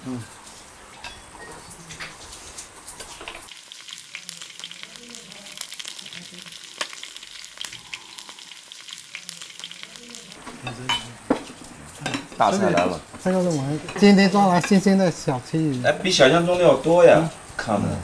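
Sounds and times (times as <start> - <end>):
food sizzling in hot oil: 1.0 - 17.3.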